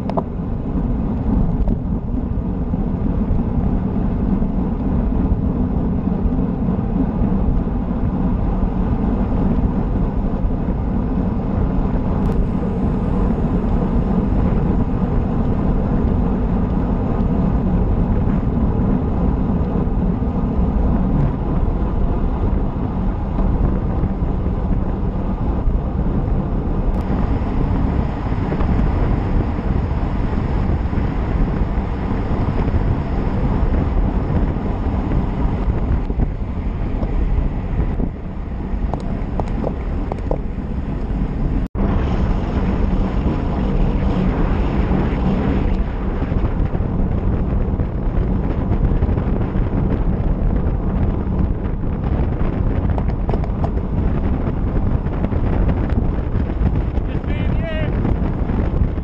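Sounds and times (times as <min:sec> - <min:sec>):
wind roaring over microphone: 0:00.0 - 0:59.0.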